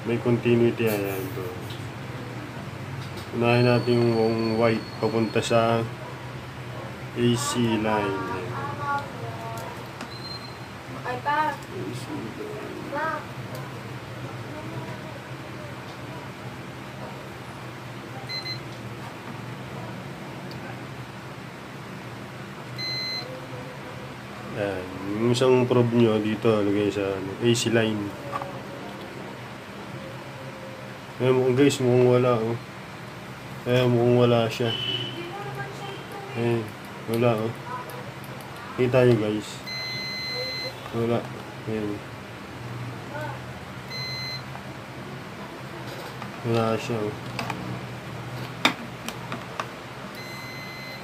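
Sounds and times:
low steady hum: 0.0s - 51.0s
multimeter beep: 10.1s - 10.7s, 18.3s - 18.7s, 22.8s - 23.4s, 39.6s - 41.0s, 43.9s - 44.5s, 50.1s - 51.0s.

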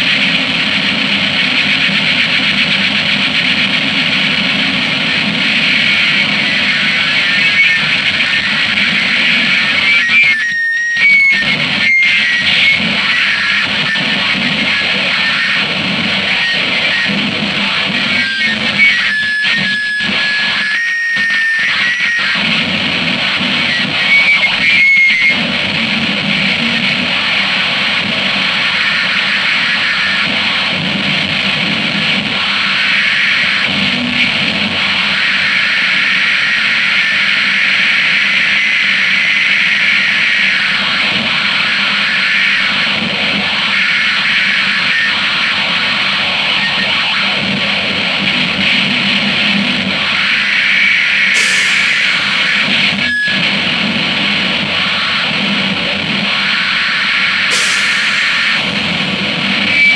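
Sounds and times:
harsh distorted noise: 0.0s - 59.9s
steady high tones: 51.4s - 53.6s, 57.5s - 59.9s.

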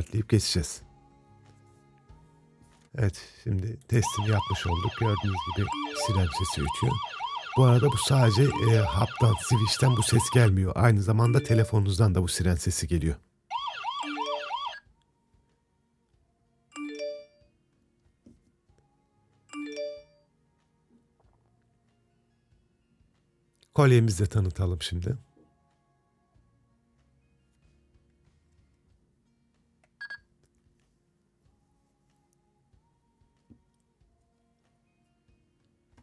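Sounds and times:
alarm siren wailing: 4.0s - 10.6s, 13.5s - 14.8s.

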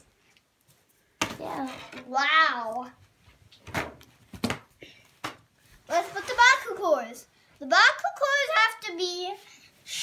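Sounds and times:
child speaking: 1.3s - 3.0s, 5.9s - 10.0s.

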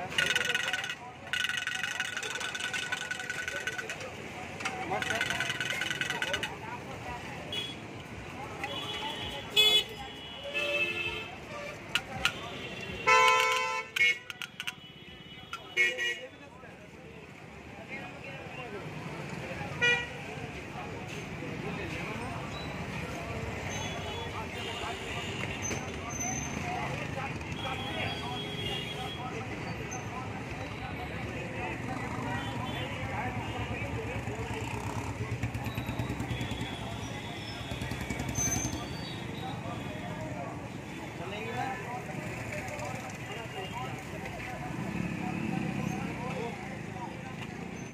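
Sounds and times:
motorcycles and scooters passing: 0.0s - 7.4s, 31.6s - 39.4s, 41.8s - 47.9s
people talking: 0.0s - 47.8s
traffic hum: 0.0s - 47.9s
vehicle horns honking: 8.6s - 16.3s
clicks: 11.8s - 12.5s.

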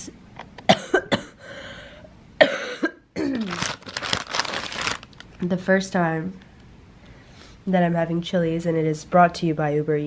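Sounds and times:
woman coughing: 0.7s - 1.4s, 2.4s - 3.6s.

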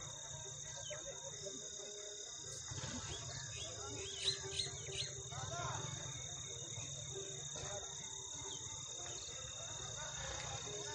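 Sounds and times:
high-pitched insect chorus: 0.0s - 10.9s.

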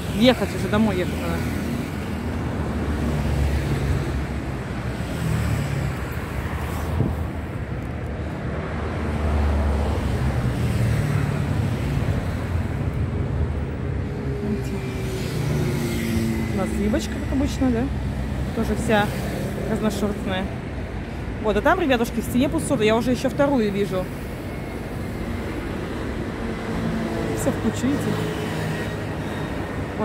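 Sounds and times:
road traffic rumble: 0.0s - 30.0s.

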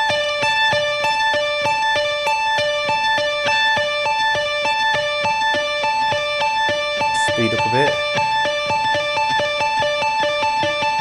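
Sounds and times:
electric guitar picked notes: 0.0s - 11.0s.

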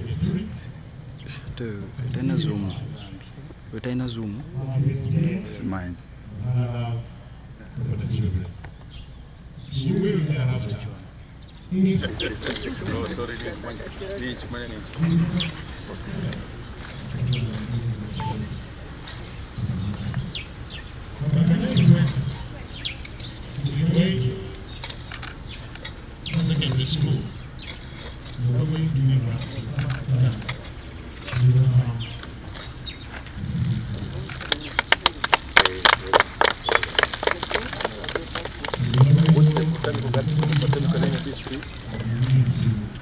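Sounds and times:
murmured voices: 0.0s - 8.8s, 9.7s - 43.0s
small birds chirping: 8.5s - 9.8s, 11.2s - 34.8s, 35.7s - 42.7s
scattered hand claps: 34.3s - 42.1s.

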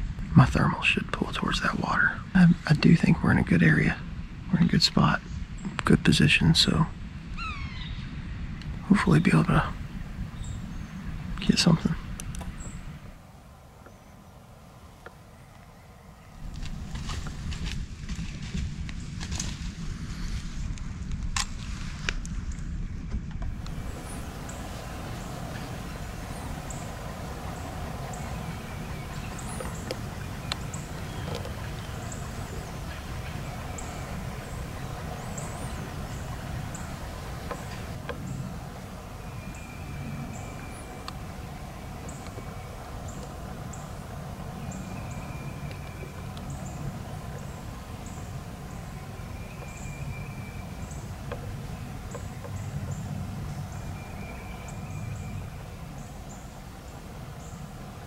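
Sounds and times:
low steady rumble: 0.0s - 58.0s
birds chipping: 4.7s - 17.5s, 23.4s - 58.0s.

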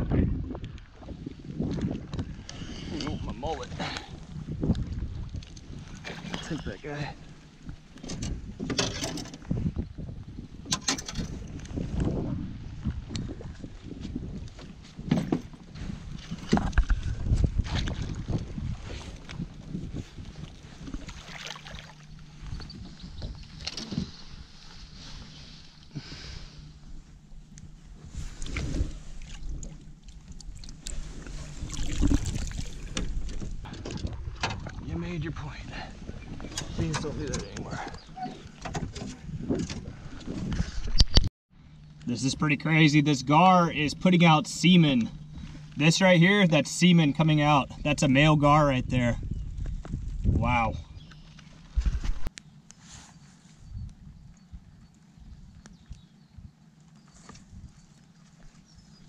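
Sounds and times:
knocks and thumps against hull: 7.6s - 9.9s, 14.6s - 24.5s, 36.2s - 41.2s.

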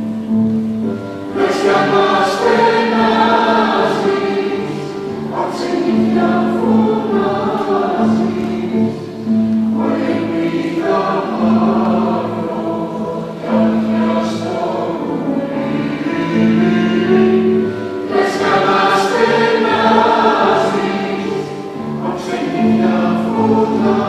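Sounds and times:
mixed choir singing slow song: 0.9s - 24.0s.

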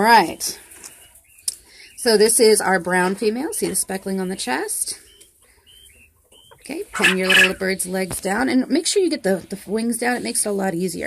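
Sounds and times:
quail peeping: 0.2s - 7.8s.

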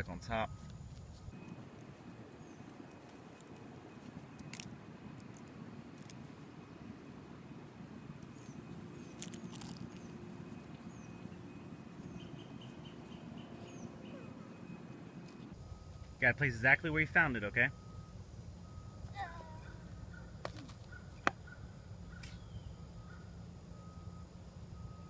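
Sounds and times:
faint outdoor ambience: 0.0s - 25.0s
high bird chirps: 8.3s - 15.0s.

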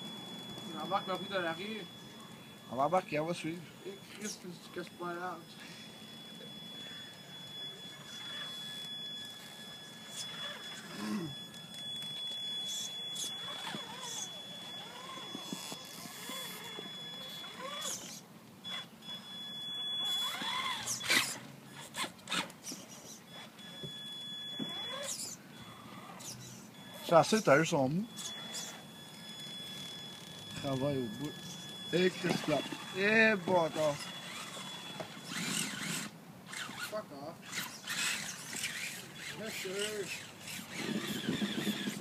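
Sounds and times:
electric motor whine: 0.0s - 42.0s.

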